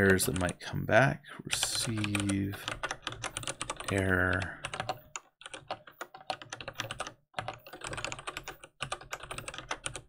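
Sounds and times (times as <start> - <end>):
typing on computer keyboard: 0.0 - 0.6, 1.5 - 10.0.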